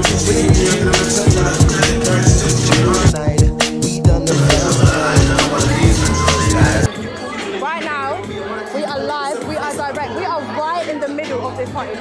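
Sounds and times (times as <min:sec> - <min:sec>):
crowd chatter: 0:04.2 - 0:12.0.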